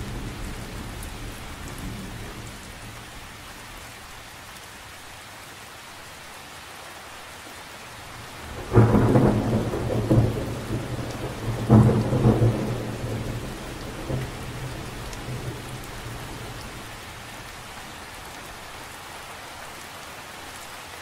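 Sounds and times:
rain falling on water: 0.0s - 21.0s
thunder rumbling: 8.3s - 17.5s.

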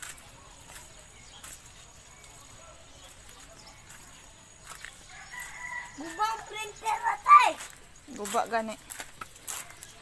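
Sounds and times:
rooster crowing: 5.1s - 6.5s.

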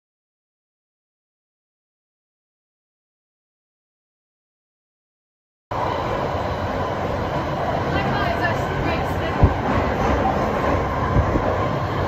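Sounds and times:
train wheels rumbling on rails: 5.8s - 12.0s.

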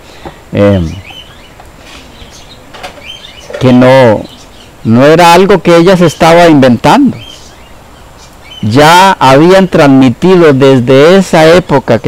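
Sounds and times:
faint bird chirps: 0.5s - 5.4s, 6.9s - 9.2s.

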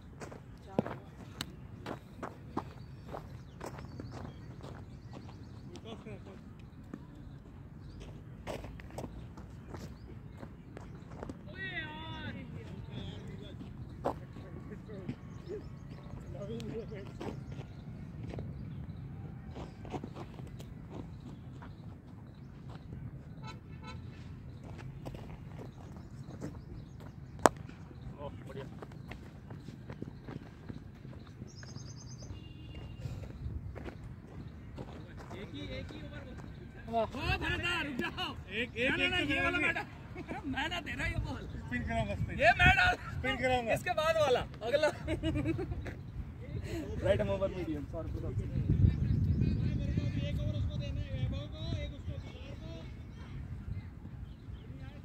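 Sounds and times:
distant players' voices: 0.0s - 55.0s.

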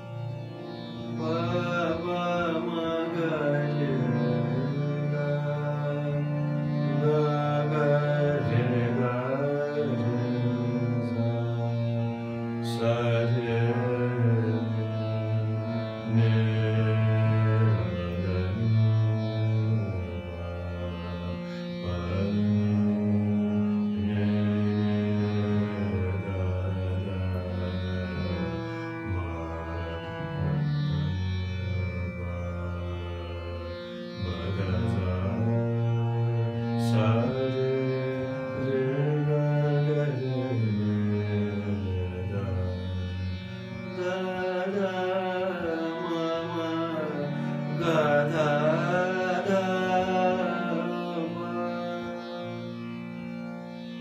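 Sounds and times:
sustained drone notes: 0.0s - 53.7s
man singing wordless melody: 1.0s - 32.9s, 34.1s - 53.5s.

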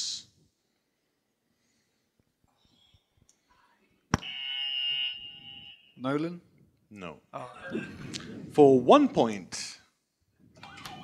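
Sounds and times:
quiz buzzer tone: 4.2s - 6.0s.

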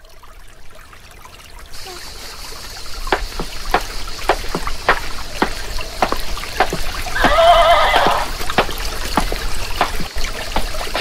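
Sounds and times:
horse whinnying: 7.2s - 8.3s.

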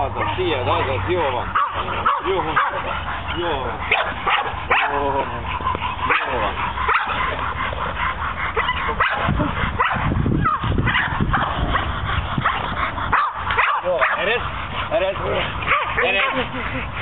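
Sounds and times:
dogs yipping and whining: 0.0s - 17.0s
steady low rumble: 0.0s - 17.0s.

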